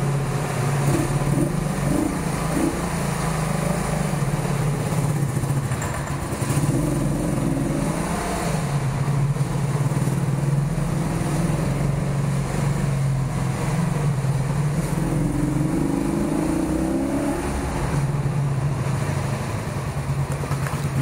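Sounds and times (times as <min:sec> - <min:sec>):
motorcycle engine running slowly: 0:00.0 - 0:16.8, 0:17.6 - 0:21.0.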